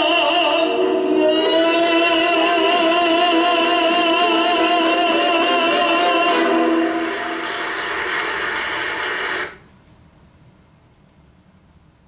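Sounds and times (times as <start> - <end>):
small clicks: 10.9 - 11.2.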